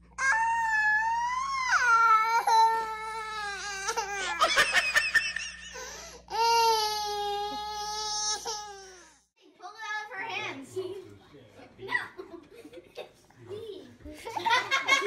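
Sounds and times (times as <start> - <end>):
toddler crying: 0.2 - 4.7, 6.3 - 9.3.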